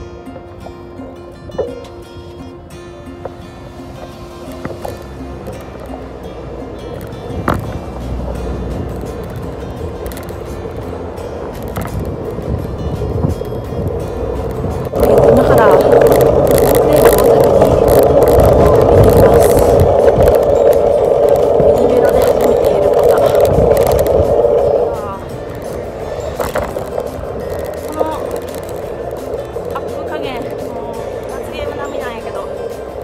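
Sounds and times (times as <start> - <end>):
background music: 0.0 - 33.0
wind and road noise: 0.0 - 33.0.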